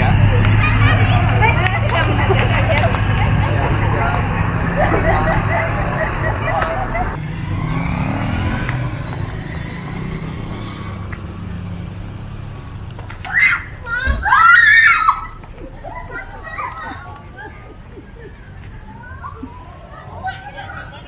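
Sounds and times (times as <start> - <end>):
low traffic hum: 0.0 - 21.0
people chattering: 0.0 - 21.0.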